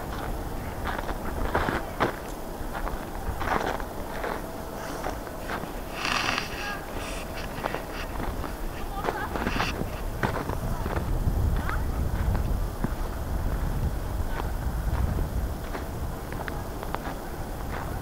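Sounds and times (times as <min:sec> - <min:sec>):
wind rumble on microphone: 0:00.0 - 0:18.0
footsteps crunching in snow: 0:00.1 - 0:13.7.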